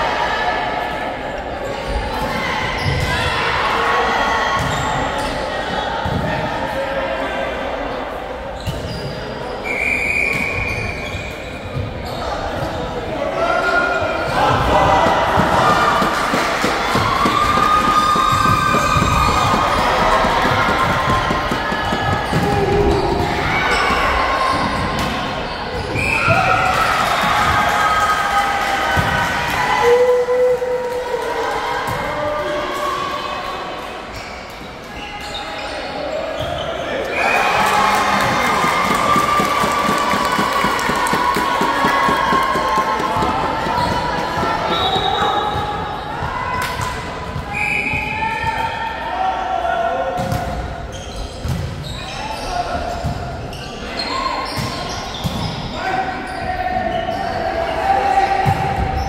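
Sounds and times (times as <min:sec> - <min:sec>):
volleyball thuds: 0:14.5 - 0:23.4.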